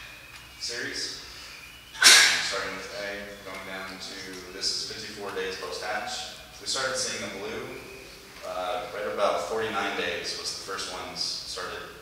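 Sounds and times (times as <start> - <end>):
sudden sharp noise: 2.0 - 2.6
person speaking: 2.0 - 12.0.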